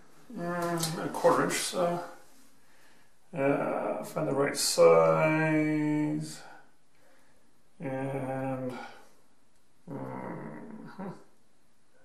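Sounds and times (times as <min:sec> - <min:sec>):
man humming or grunting: 0:09.9 - 0:11.3.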